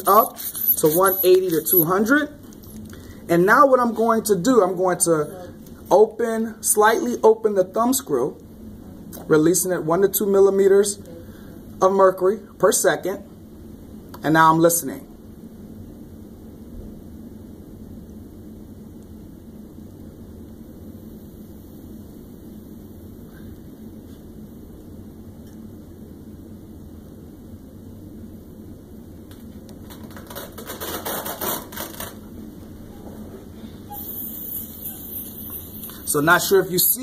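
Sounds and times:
air hissing from cuff: 0.0s - 1.9s, 33.6s - 36.9s
air leaking from cuff: 0.0s - 1.9s, 33.9s - 36.5s
low room noise: 0.0s - 37.0s.

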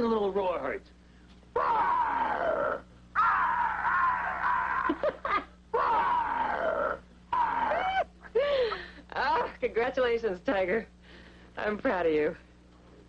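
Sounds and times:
person giving playful roars: 1.6s - 5.1s, 5.8s - 8.1s.

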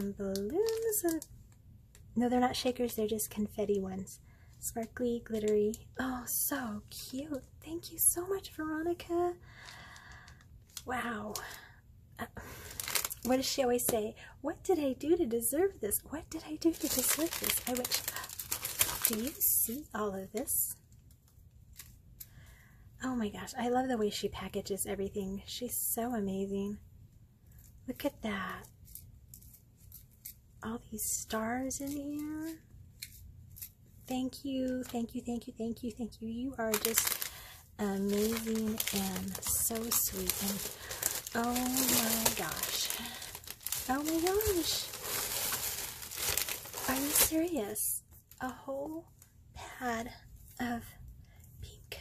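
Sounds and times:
packaging rustling and crinkling: 0.0s - 1.3s, 12.4s - 14.0s, 16.3s - 22.0s, 36.6s - 48.4s.

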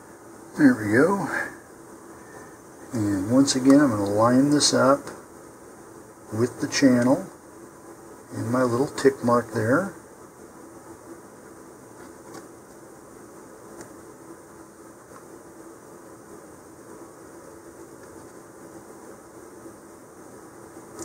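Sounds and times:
low background hiss: 0.0s - 21.0s.

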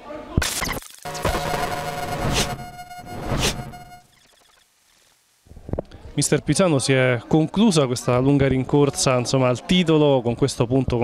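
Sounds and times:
musical transition sting: 1.1s - 4.1s.

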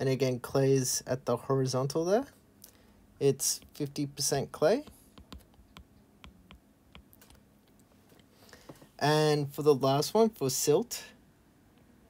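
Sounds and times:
stylus tapping on glass screen: 4.8s - 7.4s.

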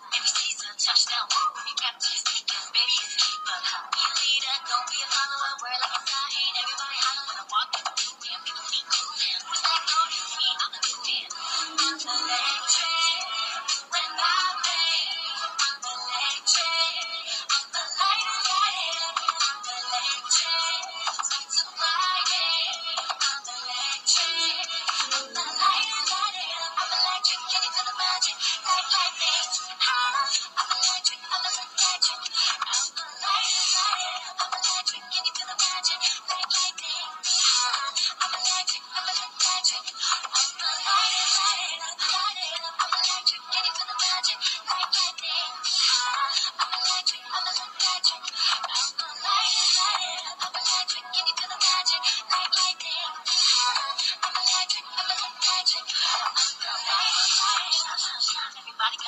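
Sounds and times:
thin background song with singing: 0.0s - 59.0s.

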